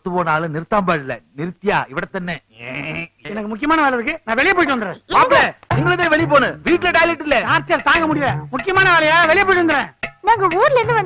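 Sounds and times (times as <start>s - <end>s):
excited agitated voices: 2.4s - 5.6s.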